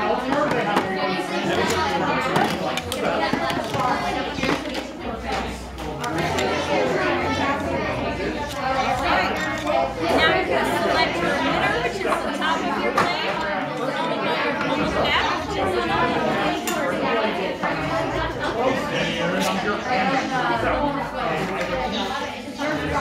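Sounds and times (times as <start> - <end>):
people chattering: 0.0 - 23.0.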